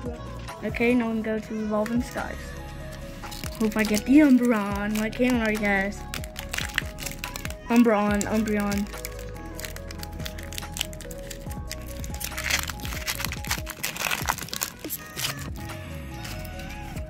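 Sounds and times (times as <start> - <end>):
background music: 0.0 - 17.0
foil wrapper crinkling: 2.9 - 17.0.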